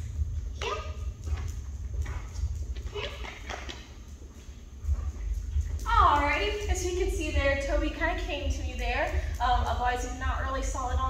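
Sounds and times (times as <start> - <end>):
low hum: 0.0 - 11.0
dog walking on concrete: 0.2 - 11.0.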